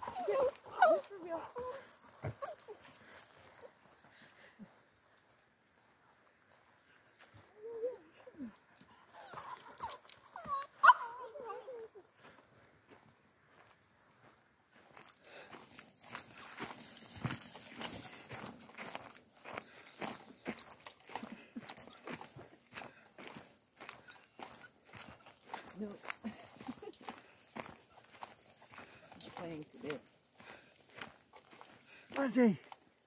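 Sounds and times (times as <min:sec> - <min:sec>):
dog whining and yelping: 0:00.0 - 0:02.8, 0:09.1 - 0:12.0
footsteps on dirt trail: 0:00.0 - 0:33.0.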